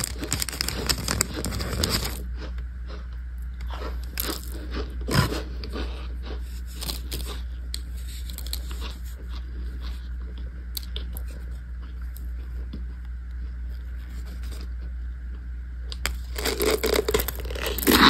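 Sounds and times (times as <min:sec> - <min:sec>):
cornstarch chunks crunching: 0:00.0 - 0:14.9, 0:15.9 - 0:18.0.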